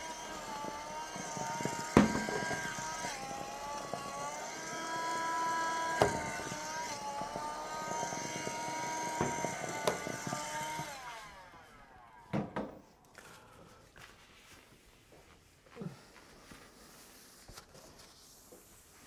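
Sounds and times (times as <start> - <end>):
window vacuum motor whine: 0.0 - 13.0
tool knocking on board: 1.6 - 3.1, 6.0 - 10.9.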